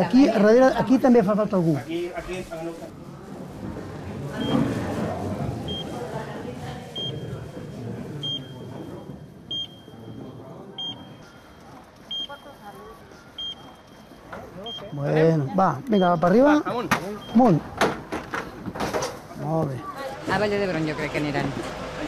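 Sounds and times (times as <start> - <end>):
voices and bustle: 0.0 - 22.0
heart monitor beeps: 4.4 - 4.7, 5.6 - 6.0, 7.0 - 7.3, 8.2 - 15.1, 15.7 - 17.6.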